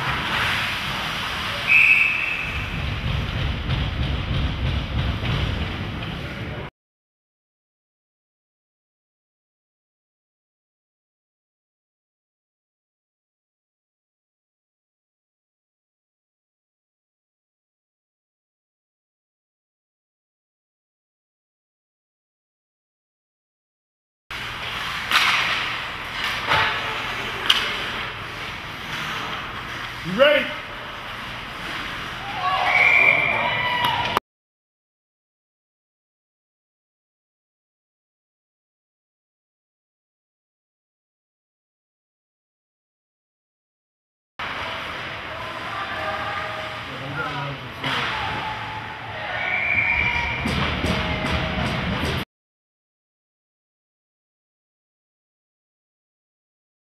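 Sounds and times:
rink and crowd noise: 0.0s - 6.7s, 24.3s - 34.2s, 44.4s - 52.2s
skating noise: 0.0s - 6.7s, 24.3s - 34.2s, 44.4s - 52.2s
hockey sticks and puck cracking: 24.4s - 33.1s
sharp crack of stick or puck: 24.6s - 28.1s
crowd cheering: 32.2s - 34.2s, 47.8s - 52.2s
voices: 44.4s - 51.8s.

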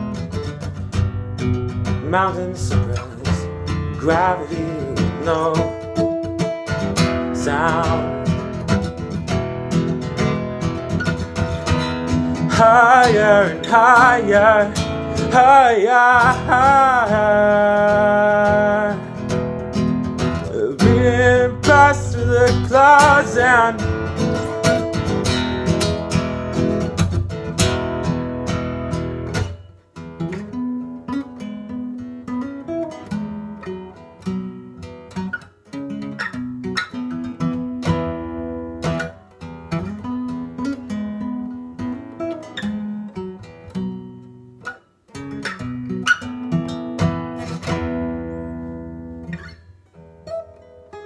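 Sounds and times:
acoustic guitar strumming and fingerpicking: 0.0s - 51.0s.

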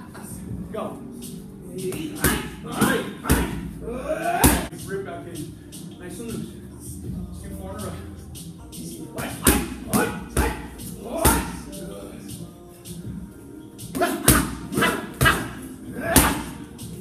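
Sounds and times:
punches hitting padded mitts: 2.2s - 3.6s, 9.2s - 11.6s, 14.0s - 16.6s.

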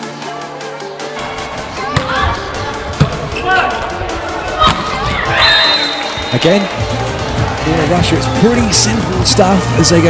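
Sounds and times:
arena noise: 0.1s - 10.0s.

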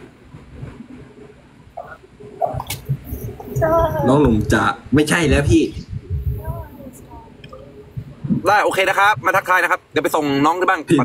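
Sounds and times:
low steady rumble: 0.0s - 11.0s.

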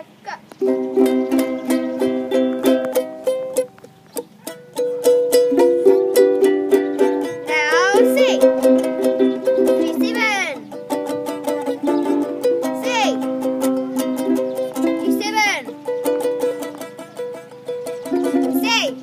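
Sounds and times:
ukuleles strummed: 0.6s - 19.0s.

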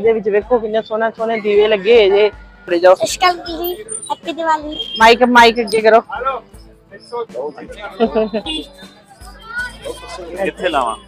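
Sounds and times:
background music: 0.0s - 11.0s
child's voice: 3.0s - 4.8s, 9.2s - 10.4s
people talking: 7.0s - 11.0s.

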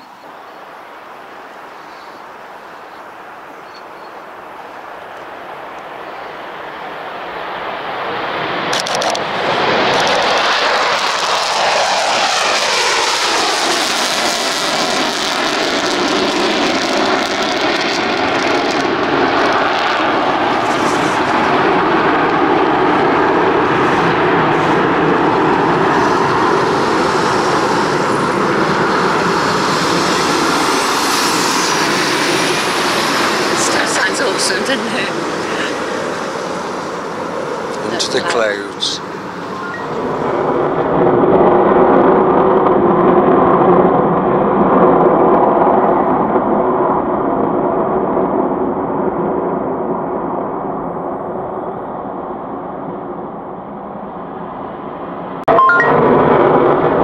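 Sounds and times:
jet bomber engines roaring: 0.0s - 57.0s.

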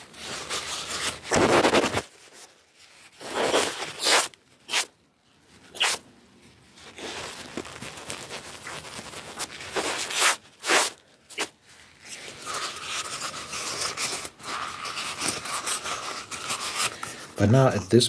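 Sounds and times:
cardboard tube rubbing and crinkling: 0.0s - 4.9s, 6.8s - 17.0s.

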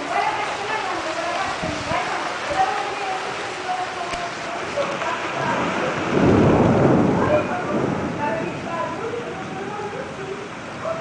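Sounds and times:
steady rain: 0.0s - 11.0s
thunder rumbling: 0.0s - 11.0s.

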